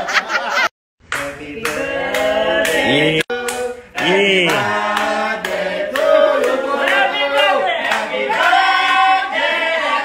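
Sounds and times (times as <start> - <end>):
group clapping quickly: 1.0 - 9.7
voices singing: 1.1 - 10.0.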